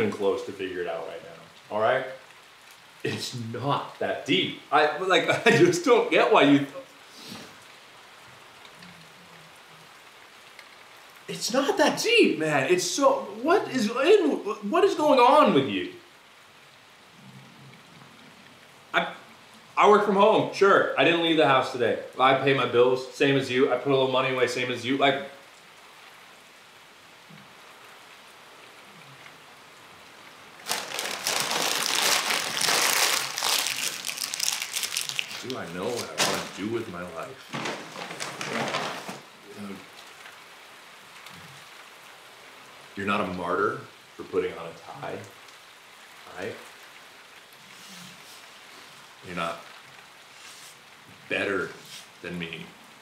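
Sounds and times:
man's voice: 0.0 - 2.1, 3.1 - 6.8, 11.3 - 16.0, 35.3 - 37.6
faint steady hiss: 0.0 - 53.0.

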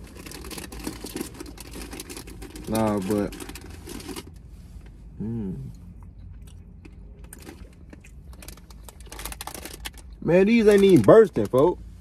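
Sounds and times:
plastic snack bag crinkling: 0.0 - 4.4, 7.2 - 11.7
low steady hum: 0.0 - 12.0
chewing gummy candy: 6.0 - 11.5.

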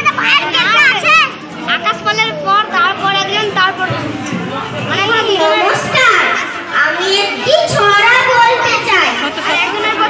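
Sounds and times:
child speaking into a microphone: 0.0 - 4.0, 4.8 - 10.0.

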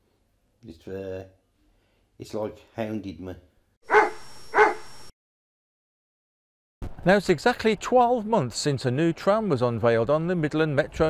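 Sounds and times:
dog barking: 3.9 - 4.9.

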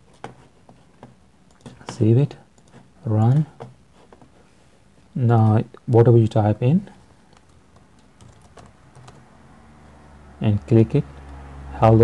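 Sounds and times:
faint typing on keyboard: 0.0 - 4.4, 7.1 - 9.3.

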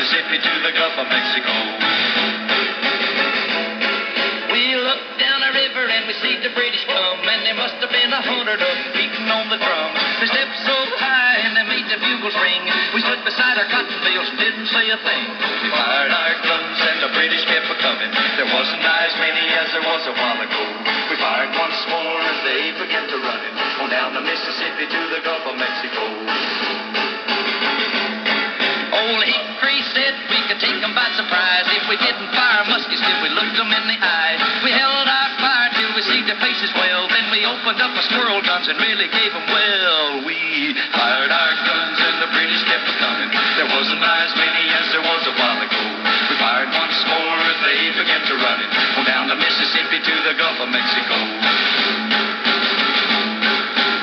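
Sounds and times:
country-folk song on old radio: 0.0 - 54.0.

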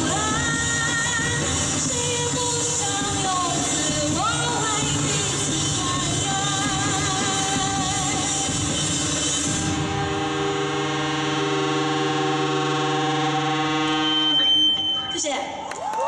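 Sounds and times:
rock band chord ringing out: 0.0 - 15.2
guitar feedback whine: 4.7 - 15.6.

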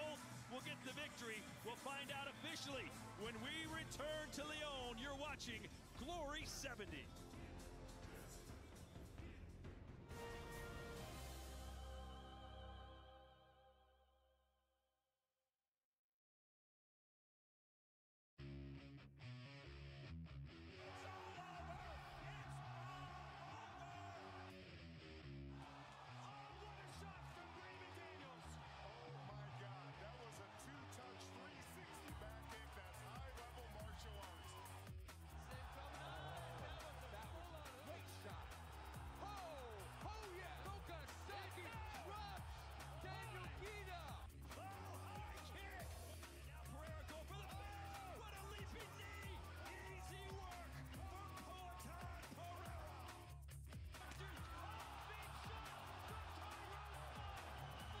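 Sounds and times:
music with steady beat: 0.0 - 12.0, 30.4 - 58.0.

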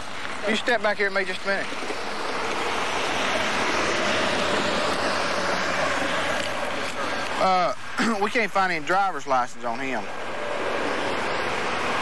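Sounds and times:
vehicle passing on highway: 0.0 - 12.0.

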